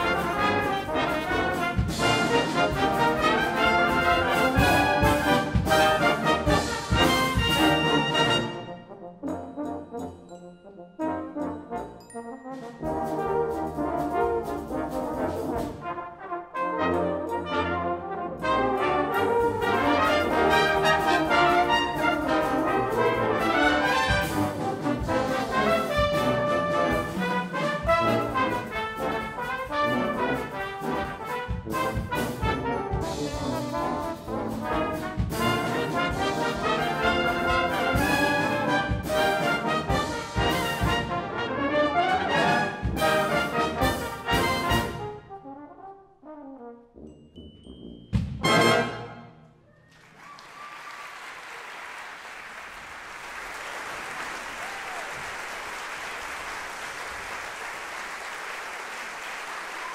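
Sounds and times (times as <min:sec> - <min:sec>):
brass band playing blues: 0:00.0 - 0:47.2, 0:47.8 - 0:49.5
drum hits: 0:48.2 - 0:48.7.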